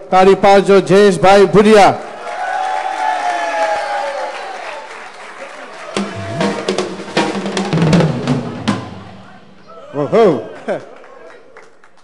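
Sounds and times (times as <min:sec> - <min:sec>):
audience applauding: 0:02.0 - 0:07.9, 0:10.4 - 0:12.0.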